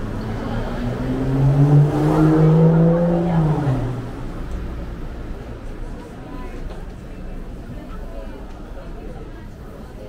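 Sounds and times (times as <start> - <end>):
vehicle driving past: 0.0 - 5.0.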